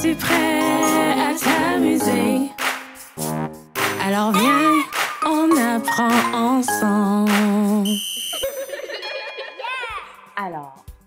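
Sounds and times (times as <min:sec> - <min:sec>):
high electronic beep: 0:07.8 - 0:08.6.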